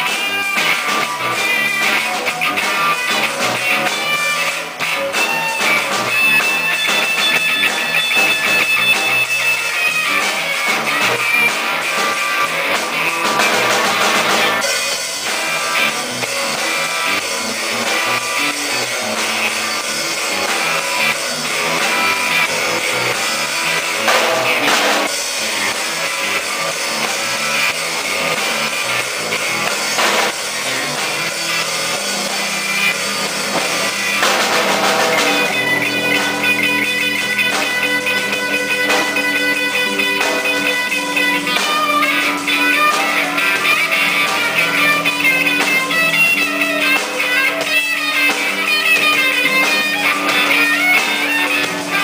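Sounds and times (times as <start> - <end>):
bass guitar: 0.0 - 52.0
drum kit: 0.0 - 52.0
electric guitar: 0.0 - 52.0.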